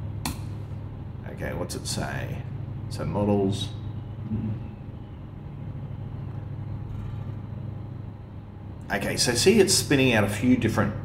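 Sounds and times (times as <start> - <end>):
low room hum and rumble: 0.0 - 11.0.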